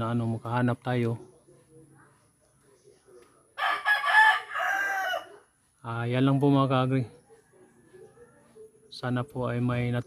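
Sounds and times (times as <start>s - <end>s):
rooster crowing: 3.6s - 5.4s.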